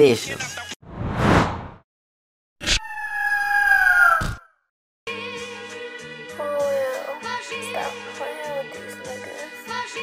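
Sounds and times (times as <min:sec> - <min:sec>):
bird cry: 0:02.8 - 0:04.5.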